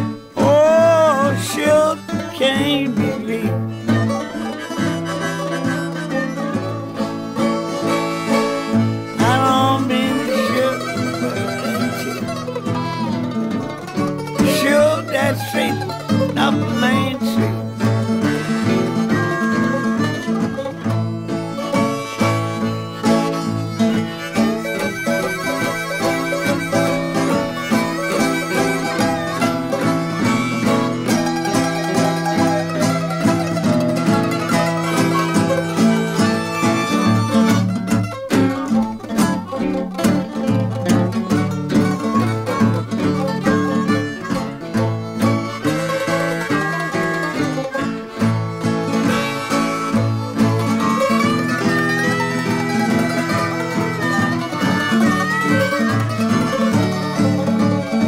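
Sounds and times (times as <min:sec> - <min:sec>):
acoustic guitars: 0:00.0 - 0:58.0
harmonica: 0:00.0 - 0:58.0.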